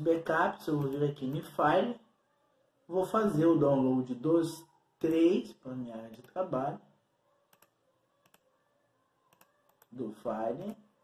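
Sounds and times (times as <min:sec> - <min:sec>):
computer mouse clicks: 0:07.5 - 0:08.5, 0:09.3 - 0:10.0.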